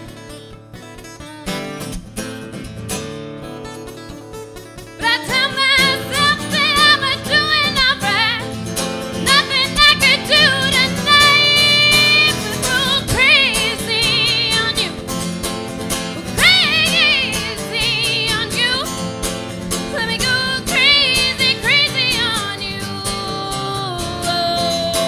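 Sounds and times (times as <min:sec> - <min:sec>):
acoustic guitar: 0:00.0 - 0:25.0
woman singing with vibrato: 0:05.0 - 0:15.3, 0:16.2 - 0:19.1, 0:19.7 - 0:25.0.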